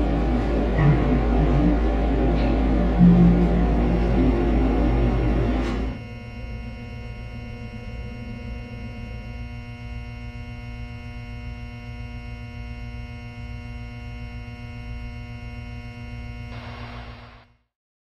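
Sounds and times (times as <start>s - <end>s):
low rumble: 0.0s - 6.0s
droning hum of held tones: 0.0s - 17.5s.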